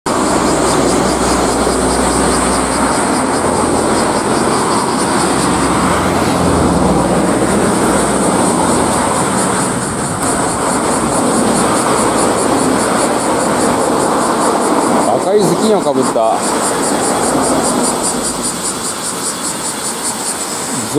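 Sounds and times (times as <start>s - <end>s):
outdoor rushing noise: 0.0s - 20.9s
high rapidly pulsing buzz: 0.1s - 20.9s
deep rumble: 16.4s - 19.3s.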